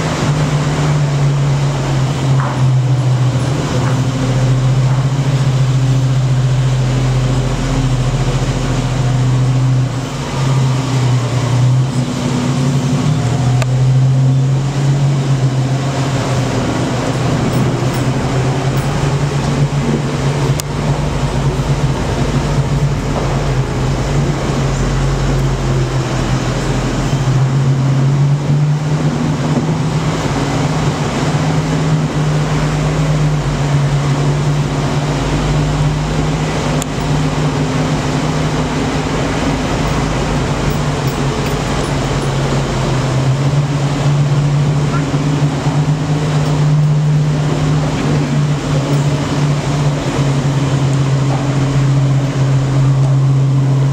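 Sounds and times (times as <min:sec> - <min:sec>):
vehicle engine humming: 0:00.0 - 0:53.9.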